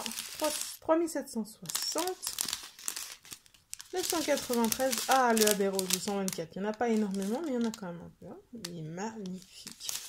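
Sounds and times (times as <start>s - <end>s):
plastic bags crinkling: 0.0s - 0.8s, 1.6s - 10.0s.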